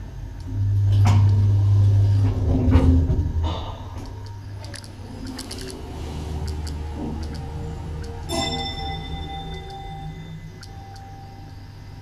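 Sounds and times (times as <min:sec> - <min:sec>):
loud low hum: 0:00.0 - 0:12.0
elevator doors sliding shut: 0:00.5 - 0:11.8.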